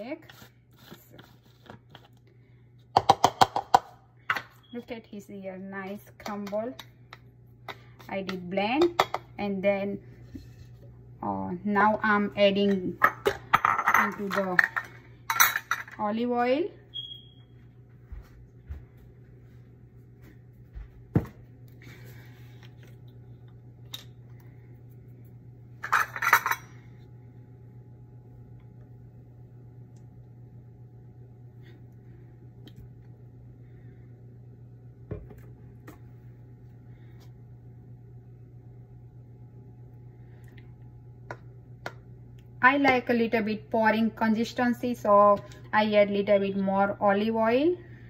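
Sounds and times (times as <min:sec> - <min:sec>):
kitchen utensils clinking: 0:12.6 - 0:16.0, 0:25.8 - 0:26.9
low hum: 0:16.7 - 0:48.0.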